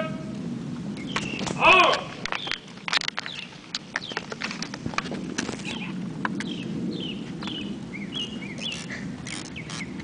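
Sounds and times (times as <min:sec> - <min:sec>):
bird chirping: 0:01.0 - 0:01.6, 0:02.2 - 0:04.3, 0:05.7 - 0:10.0
hard-soled footsteps on stone: 0:01.1 - 0:05.8.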